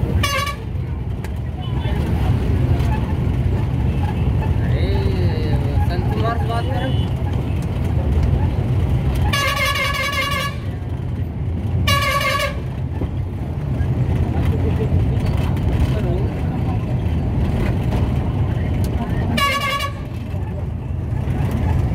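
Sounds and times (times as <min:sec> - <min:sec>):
vehicle engine and road noise: 0:00.0 - 0:21.9
vehicle horn honking: 0:00.2 - 0:00.7, 0:09.2 - 0:10.7, 0:11.8 - 0:12.6, 0:19.3 - 0:20.2.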